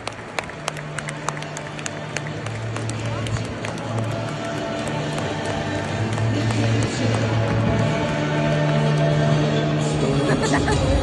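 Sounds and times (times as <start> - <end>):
close sharp claps: 0.0 - 9.2
crowd clapping: 0.0 - 9.5
music over loudspeakers: 0.0 - 11.0.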